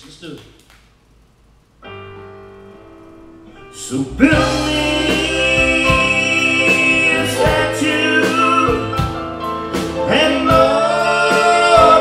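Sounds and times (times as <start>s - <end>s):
live country band playing: 3.5s - 12.0s
man singing: 3.7s - 9.2s, 10.0s - 12.0s.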